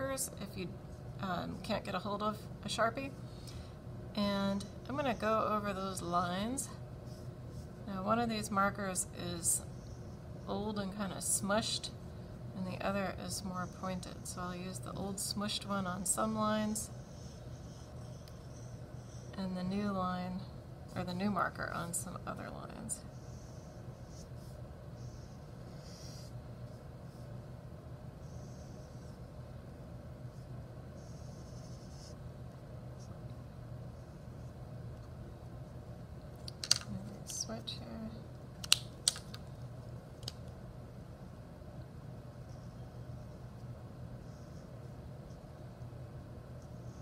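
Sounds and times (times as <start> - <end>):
steady low hum: 0.0 - 47.0
marker scratching on paper: 30.3 - 32.2
markers clicking and tapping: 36.4 - 37.4, 38.6 - 39.5.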